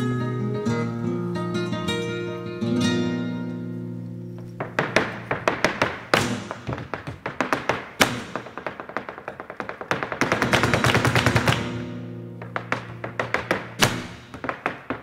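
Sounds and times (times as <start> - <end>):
guitar chords: 0.0 - 4.6, 11.7 - 14.0
flamenco footwork taps: 1.6 - 15.0.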